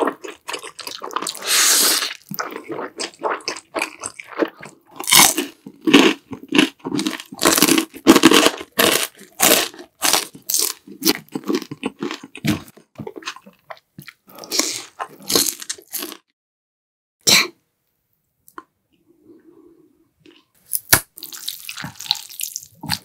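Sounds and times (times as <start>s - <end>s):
wet chewing: 0.0s - 16.2s, 21.2s - 23.0s
crunching crispy fried food: 0.0s - 16.3s, 20.7s - 23.0s.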